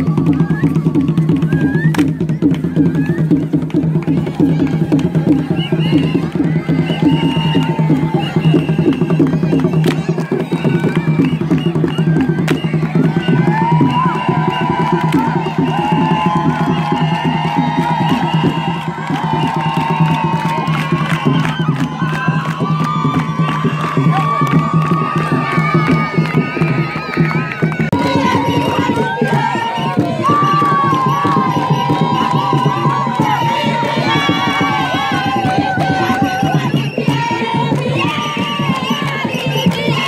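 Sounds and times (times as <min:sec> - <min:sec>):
crowd cheering: 0:00.0 - 0:40.0
fast rhythmic percussion music: 0:00.0 - 0:40.0.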